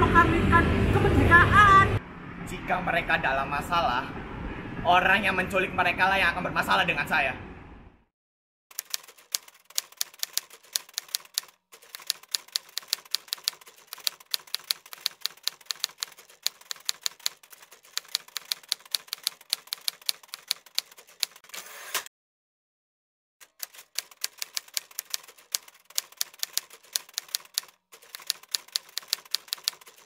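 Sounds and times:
typewriter keystroke clacks: 8.7s - 21.5s, 23.4s - 30.0s.

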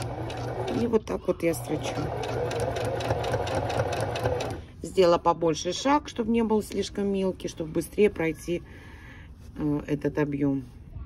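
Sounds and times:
sewing machine running: 0.0s - 1.0s, 1.6s - 4.6s.

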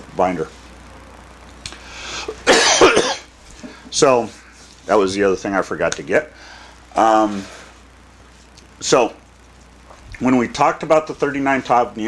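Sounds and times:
man coughing loudly: 2.3s - 3.3s.

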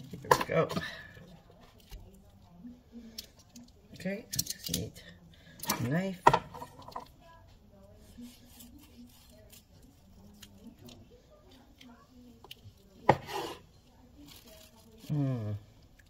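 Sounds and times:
knife slicing on wooden board: 13.1s - 13.6s.

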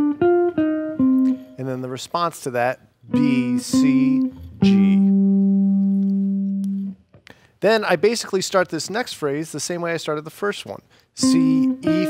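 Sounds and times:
guitar note ringing: 0.0s - 1.9s, 3.1s - 7.1s.

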